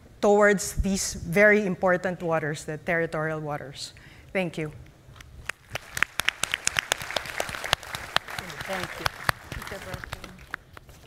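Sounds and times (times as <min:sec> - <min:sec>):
applause: 0:05.5 - 0:10.9.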